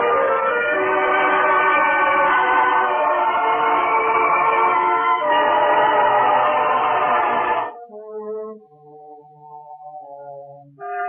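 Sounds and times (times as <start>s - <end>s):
loud orchestral music: 0.0s - 7.8s.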